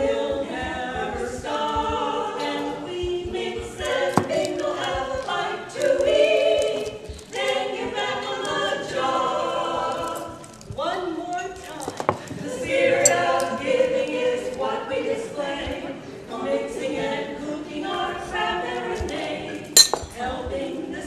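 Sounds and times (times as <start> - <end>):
women singing a cappella in harmony: 0.0 - 21.0.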